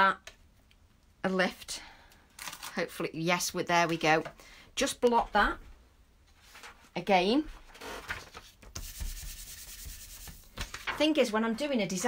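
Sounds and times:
hand rubbing paper: 8.1s - 10.8s.

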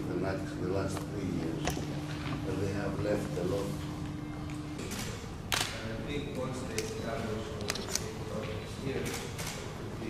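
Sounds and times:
quiet conversation: 0.1s - 10.0s.

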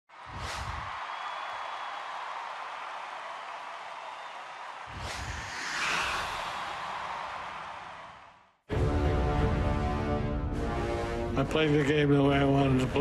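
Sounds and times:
low whooshing hit: 4.9s - 7.5s.

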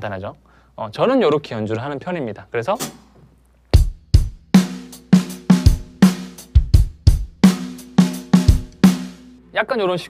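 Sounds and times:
kick drum: 3.8s - 4.6s.

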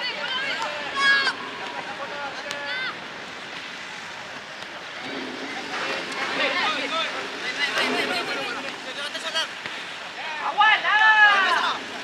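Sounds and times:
young players shouting: 0.0s - 3.0s, 10.3s - 11.8s
outdoor hiss: 0.0s - 12.0s.

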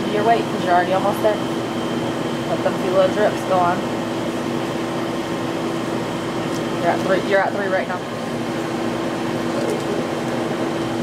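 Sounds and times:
machine hum: 0.0s - 11.0s.

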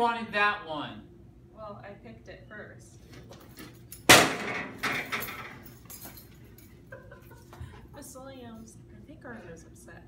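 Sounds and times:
clattering crash with metallic ring: 3.5s - 6.7s.

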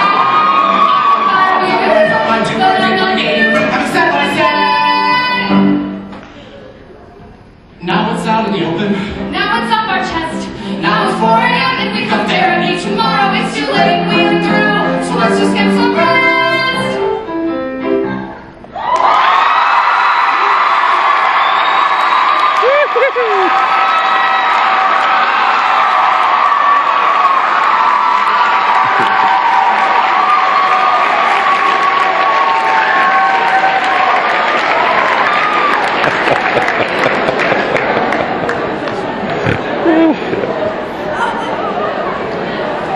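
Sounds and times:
audience applause and cheering: 0.0s - 5.4s, 18.7s - 42.9s
person singing: 0.8s - 5.8s, 7.9s - 17.0s
piano: 7.8s - 19.0s.

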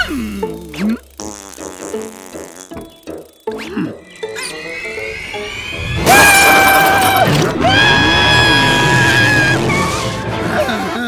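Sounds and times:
cartoon music: 0.0s - 11.0s
rising sliding tones: 3.0s - 10.5s.

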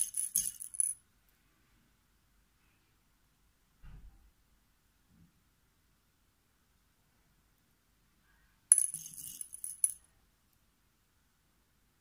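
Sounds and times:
beads clinking in glass bowl: 0.0s - 1.0s, 8.7s - 10.0s.

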